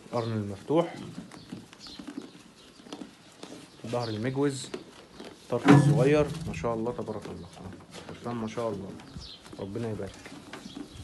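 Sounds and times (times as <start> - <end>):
sheep eating from metal trough: 0.0 - 11.0.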